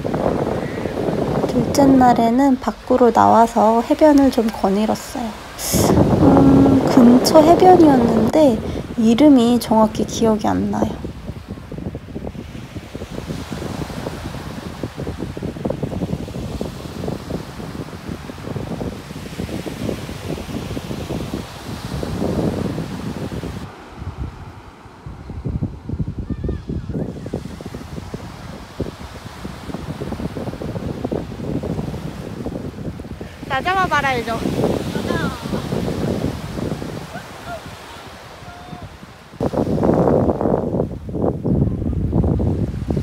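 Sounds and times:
small waves washing onto beach: 0:00.0 - 0:43.0
wind gusting against microphone: 0:00.0 - 0:43.0.

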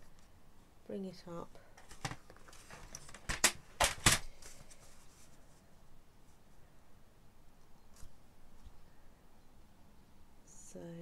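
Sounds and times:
paper and card handling: 0:01.8 - 0:05.6.

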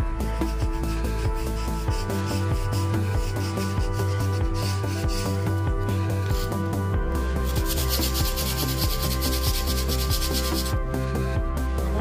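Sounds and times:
background music: 0:00.0 - 0:12.0
abrasive rubbing on wall: 0:00.2 - 0:06.6, 0:07.3 - 0:10.8.

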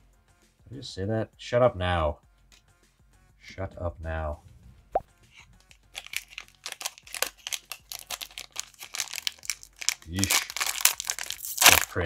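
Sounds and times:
plastic wrapper crinkling and tearing: 0:05.6 - 0:12.0.

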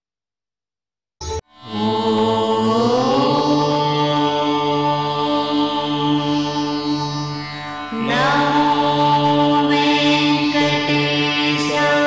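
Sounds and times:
devotional music: 0:01.3 - 0:12.0
voice chanting a long note: 0:01.6 - 0:12.0.

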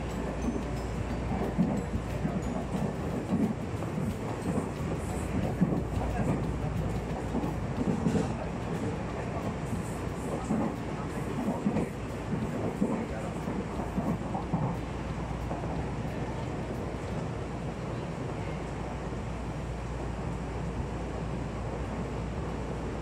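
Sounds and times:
train running rumble: 0:00.0 - 0:23.0.

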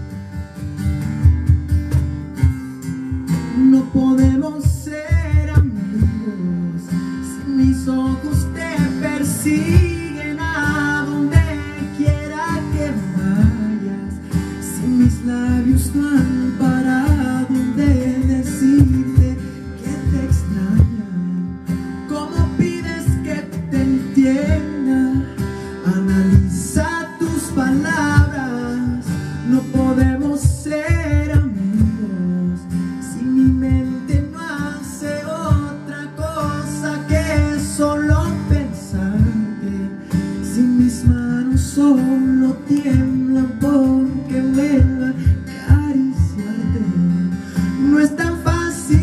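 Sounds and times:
acoustic guitar strumming: 0:00.0 - 0:49.0
man singing a slow ballad: 0:03.2 - 0:49.0.

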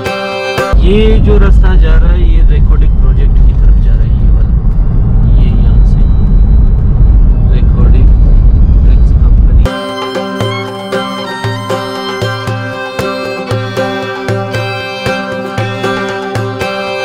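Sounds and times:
wind noise: 0:00.7 - 0:09.7.

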